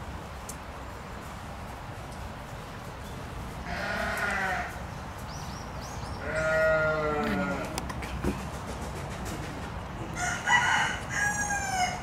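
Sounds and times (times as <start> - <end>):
bleat-like animal calls: 3.7 - 4.8, 6.2 - 7.8.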